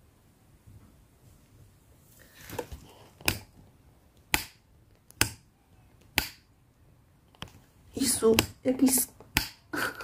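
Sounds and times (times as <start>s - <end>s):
sharp clicks or snaps: 6.1s - 6.5s.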